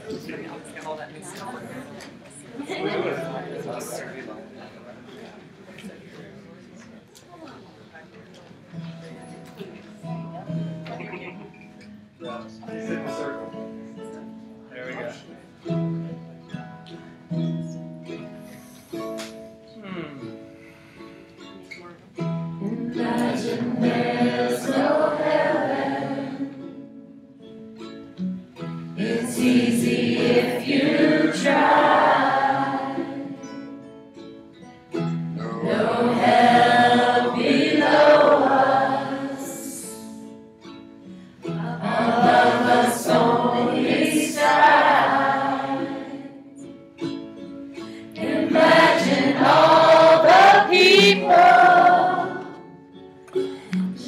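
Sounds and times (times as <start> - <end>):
plucked string instrument: 8.5 - 54.0
congregation singing in unison: 22.6 - 27.0, 29.0 - 33.6, 35.4 - 40.2, 41.6 - 46.6, 48.2 - 52.8.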